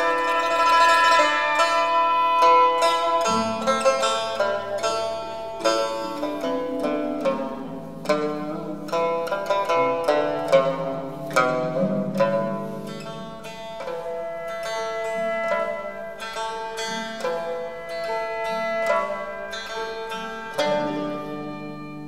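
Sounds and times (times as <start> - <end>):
plucked lute melody: 0.0 - 22.0.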